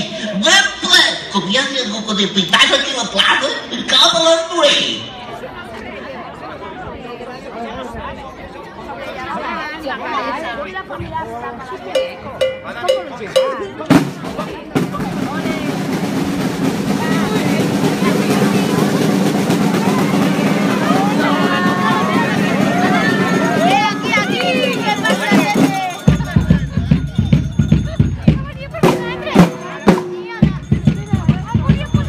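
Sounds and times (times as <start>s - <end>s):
crowd talking: 0.0s - 32.0s.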